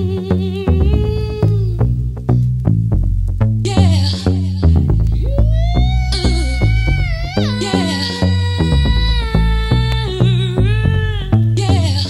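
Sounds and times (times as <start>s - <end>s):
house music: 0.0s - 12.0s.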